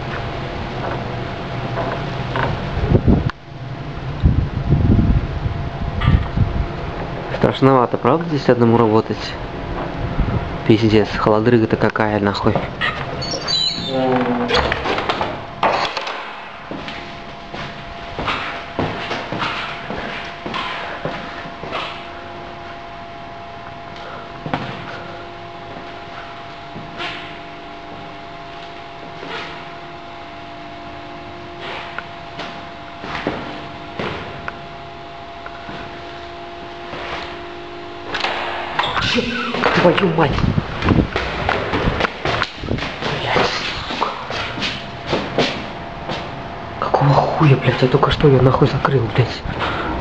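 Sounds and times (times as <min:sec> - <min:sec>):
steady hum: 0:00.0 - 0:50.0.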